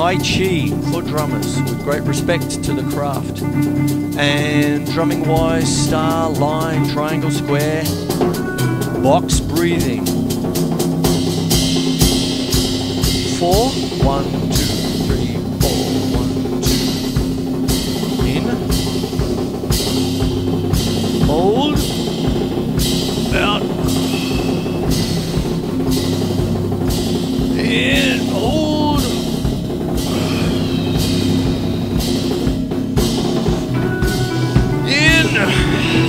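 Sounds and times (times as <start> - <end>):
cymbal strokes: 0.0 - 36.0
drum kit groove: 0.0 - 36.0
sustained low tone: 12.0 - 36.0.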